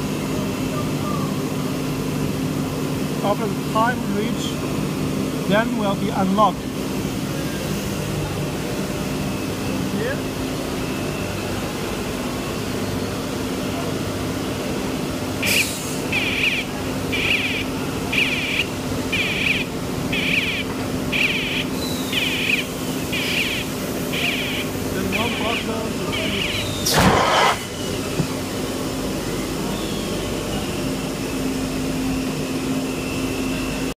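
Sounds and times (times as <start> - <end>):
machine hum: 0.0 - 34.0
air hissing: 15.4 - 16.1, 26.8 - 27.8.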